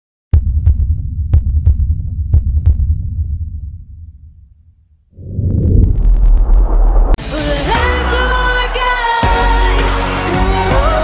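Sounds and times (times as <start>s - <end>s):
heartbeat thuds: 0.4s - 3.8s
low rumble: 0.4s - 7.2s.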